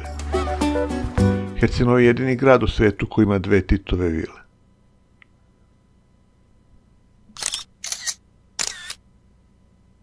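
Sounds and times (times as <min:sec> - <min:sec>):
camera shutter clicks: 0:07.4 - 0:09.0.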